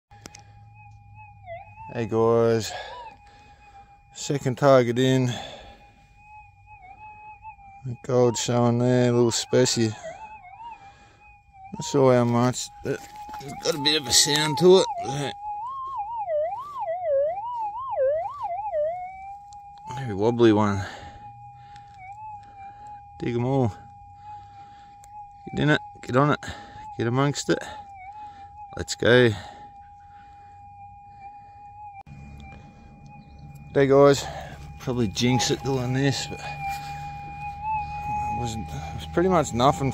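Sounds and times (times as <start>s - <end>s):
metal detector tone: 11.7s - 24.0s, 25.0s - 30.0s, 30.7s - 39.9s.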